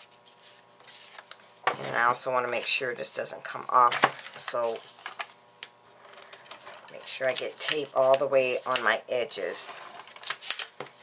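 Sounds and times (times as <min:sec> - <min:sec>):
cardstock rustling: 0:00.0 - 0:02.8, 0:03.8 - 0:05.3, 0:06.1 - 0:11.0.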